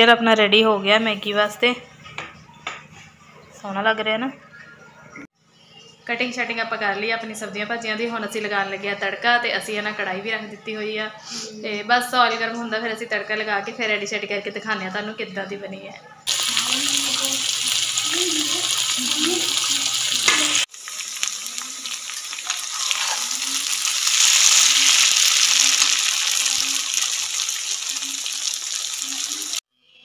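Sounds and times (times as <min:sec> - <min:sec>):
noodles sizzling in hot oil: 0:16.3 - 0:29.6.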